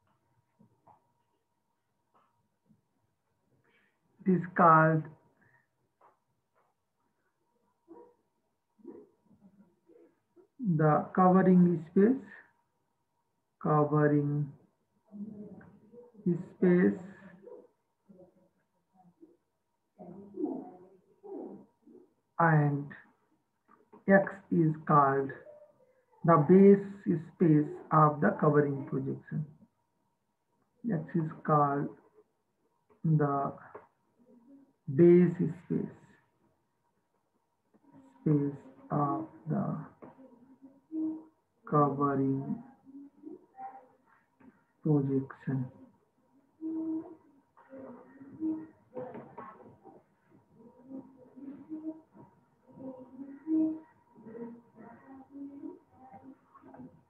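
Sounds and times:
pigeon cooing: 37.9 - 41.4, 46.5 - 56.9.

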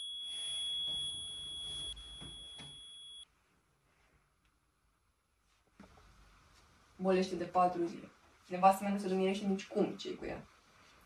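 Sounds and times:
high-pitched electronic ringing tone: 0.0 - 3.3.

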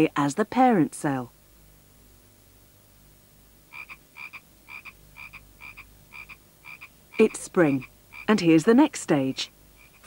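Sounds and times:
frog croaking: 3.7 - 8.6, 9.4 - 10.0.

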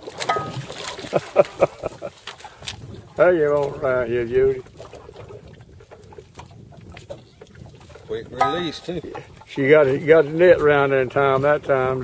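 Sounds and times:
fish splashing in water: 0.0 - 9.6.

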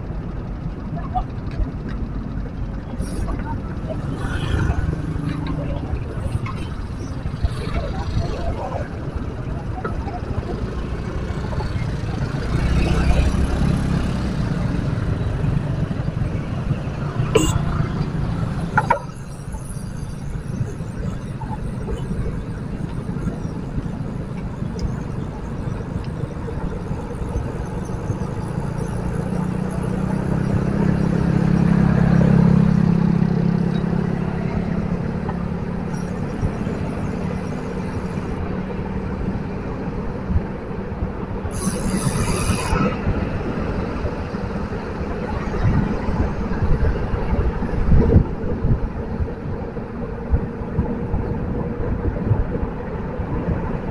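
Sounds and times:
bicycle road noise: 0.0 - 53.9
wind noise on microphone: 32.6 - 53.9.

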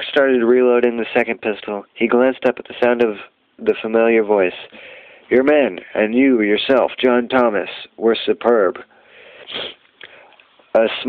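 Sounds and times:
man reading aloud: 0.0 - 9.8, 10.7 - 11.0
man sniffing: 8.9 - 10.4.

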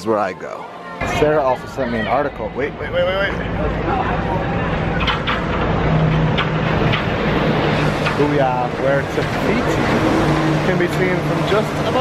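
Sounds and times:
monorail train humming: 0.7 - 12.0.

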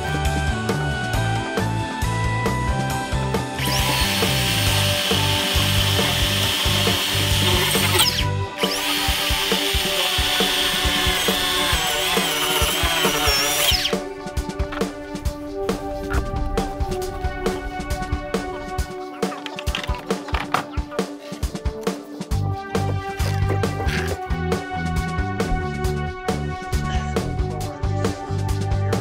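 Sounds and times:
background music: 0.0 - 29.0
power saw cutting foam block: 3.6 - 14.0
clicks and knocks: 19.3 - 20.8.

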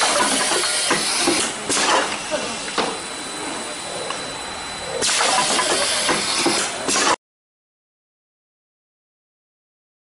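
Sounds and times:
filling machine hissing: 0.0 - 7.1.

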